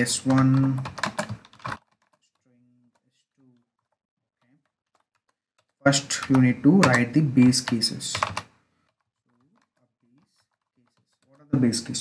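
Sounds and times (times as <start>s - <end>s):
keyboard typing: 0.0s - 12.0s
person speaking: 0.0s - 12.0s.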